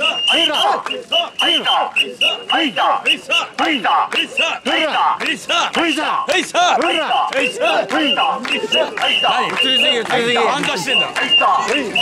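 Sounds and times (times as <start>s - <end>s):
people shouting rhythmic chant: 0.0s - 12.0s.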